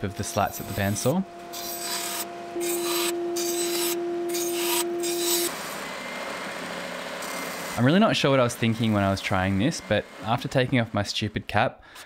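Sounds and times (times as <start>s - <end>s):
belt sander running: 0.0s - 11.6s
bandsaw cutting wood: 0.2s - 11.3s.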